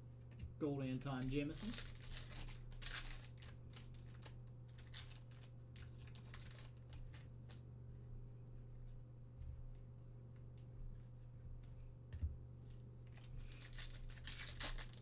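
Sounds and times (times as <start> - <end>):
steady low hum: 0.0 - 15.0
foil wrapper crinkling: 0.9 - 7.6, 13.1 - 15.0.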